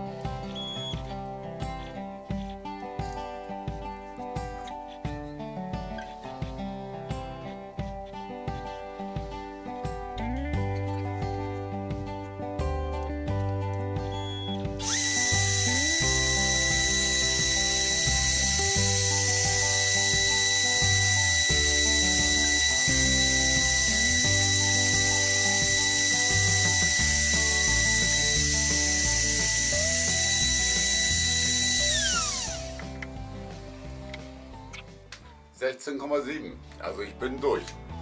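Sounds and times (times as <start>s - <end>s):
background music: 0.0s - 38.0s
router spindle whining: 14.8s - 34.9s.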